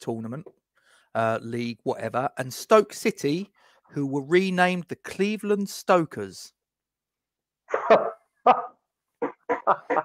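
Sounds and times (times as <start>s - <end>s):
man laughing: 7.7s - 10.0s.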